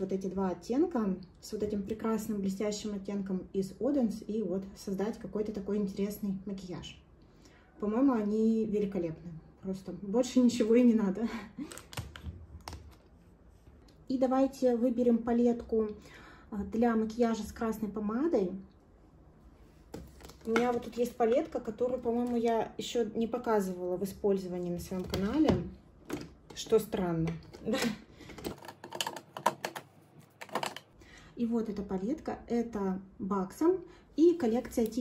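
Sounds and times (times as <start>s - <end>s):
eyeshadow palettes clacking: 20.0s - 22.7s, 24.8s - 31.0s.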